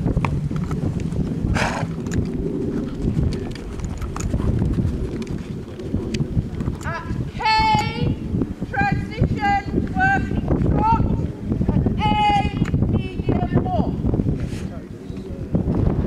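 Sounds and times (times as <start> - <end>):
horse trotting on sand: 0.0 - 8.0
wind rumbling on microphone: 0.0 - 16.0.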